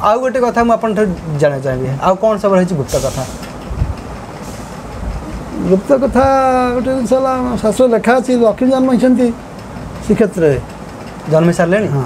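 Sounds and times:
man speaking: 0.0s - 3.4s, 5.4s - 9.4s, 10.0s - 12.0s.

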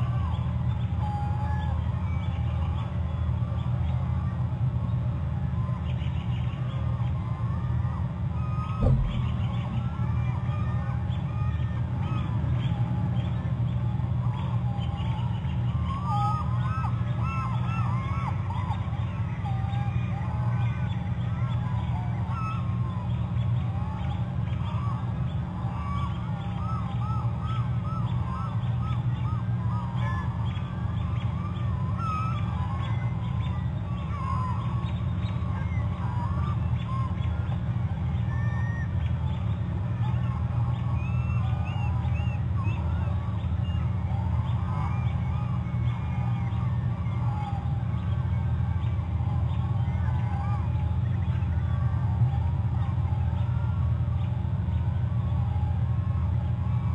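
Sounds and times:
steady low hum: 0.0s - 56.9s.

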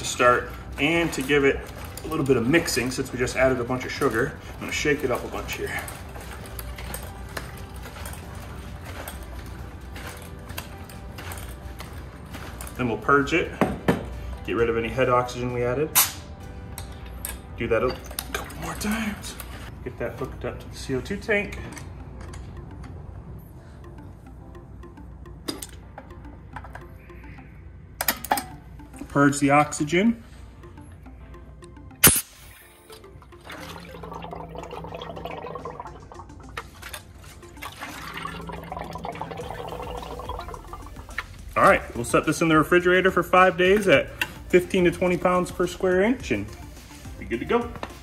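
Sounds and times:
quiet background music: 0.0s - 48.0s
cider sloshing in metal keg: 37.6s - 40.8s.

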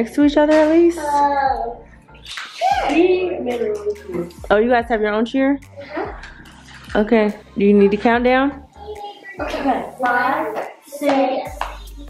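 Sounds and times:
voices speaking: 0.5s - 12.0s.

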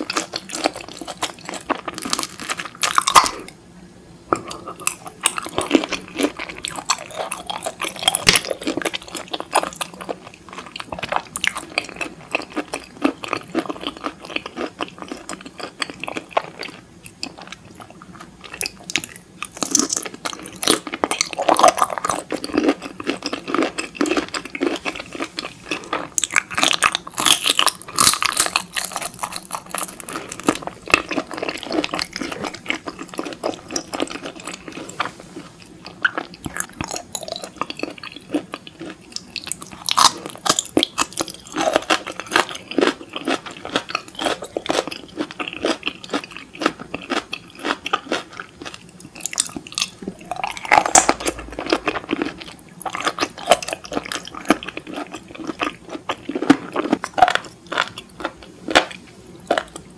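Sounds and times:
chewing shrimp: 0.0s - 3.6s, 4.3s - 59.9s.

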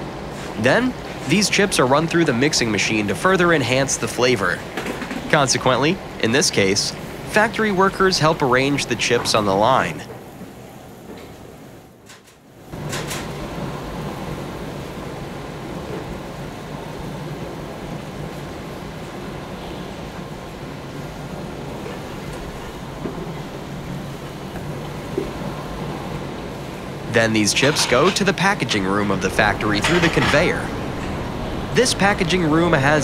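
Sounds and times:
factory machinery running: 19.6s - 33.0s
low hum: 26.7s - 33.0s.

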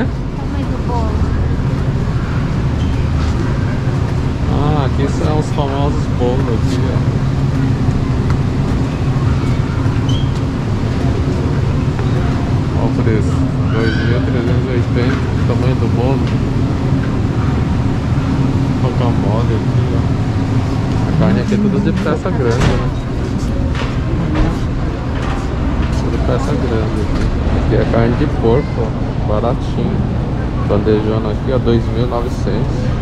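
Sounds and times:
store background rumble and hum: 0.0s - 33.0s.

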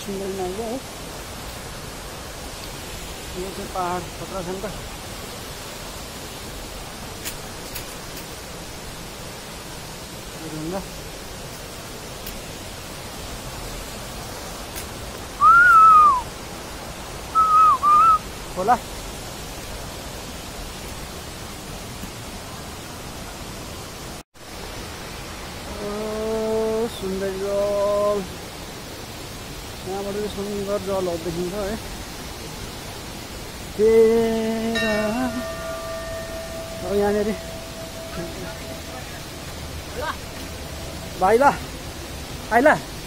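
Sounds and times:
steady hiss: 0.0s - 43.0s
person whistling loudly: 15.4s - 16.3s, 17.3s - 18.2s.

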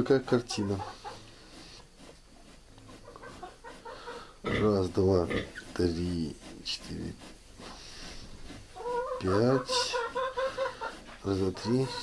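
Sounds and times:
soft clucking calls: 0.3s - 1.4s, 8.8s - 12.0s.

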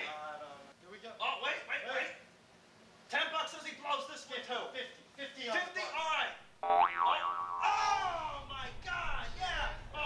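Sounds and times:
comic boing sound effect: 6.6s - 8.1s.

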